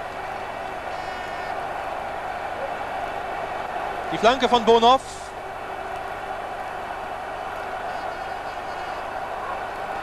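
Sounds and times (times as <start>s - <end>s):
stadium crowd noise: 0.0s - 10.0s.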